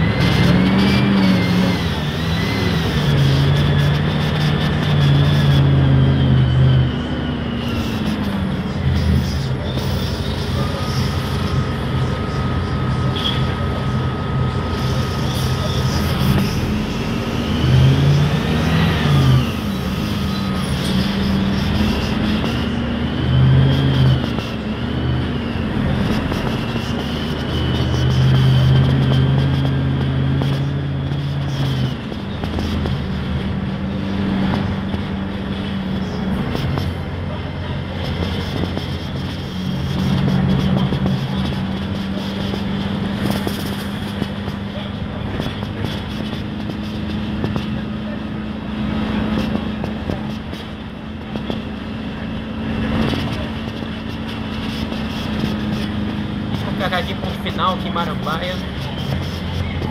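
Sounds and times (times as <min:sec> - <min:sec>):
bus diesel engine droning: 0:00.0 - 0:59.9
knocks and rattles from bus body: 0:26.0 - 0:33.1, 0:37.9 - 0:48.0, 0:49.2 - 0:51.9.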